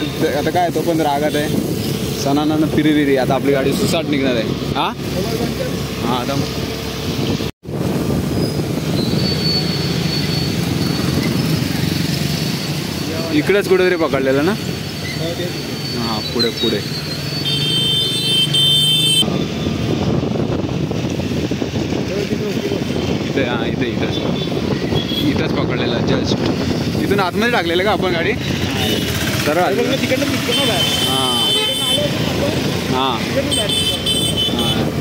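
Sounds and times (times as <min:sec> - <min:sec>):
wind and tyres on wet road: 0:04.4 - 0:13.6, 0:19.2 - 0:35.0
vehicle horn: 0:17.4 - 0:19.3, 0:30.5 - 0:32.3, 0:33.5 - 0:34.9.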